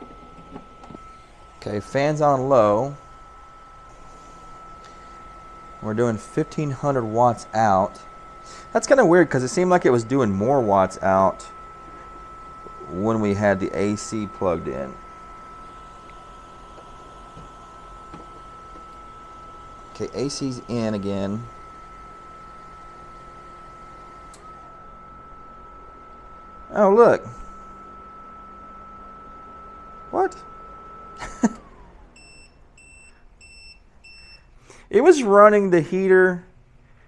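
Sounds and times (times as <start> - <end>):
thin high whine: 0.0 - 33.2
heaters and fan whirring: 0.0 - 37.0
short high alarm beeps: 32.2 - 34.5.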